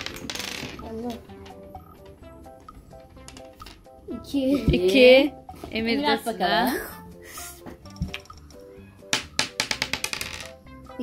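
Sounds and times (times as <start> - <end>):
background music: 0.0 - 11.0
die clattering on a tabletop: 9.1 - 10.6.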